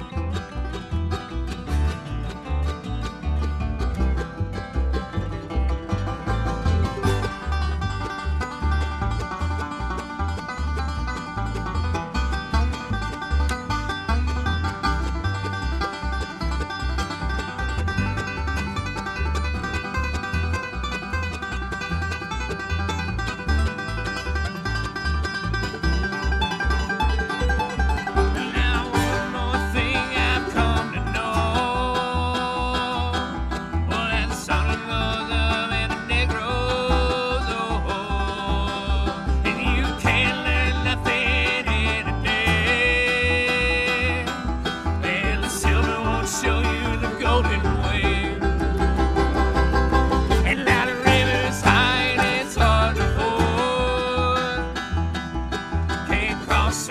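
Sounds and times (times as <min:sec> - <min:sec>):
banjo picking: 0:00.0 - 0:56.9
bluegrass string band playing: 0:00.0 - 0:56.9.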